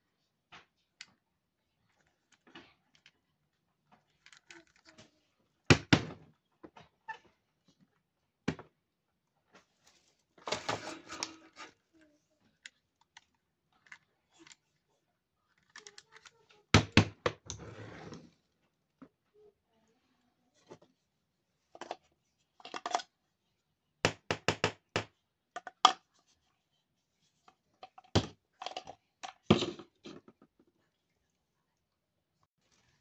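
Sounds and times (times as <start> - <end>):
plastic toy clicks: 15.6 - 16.4.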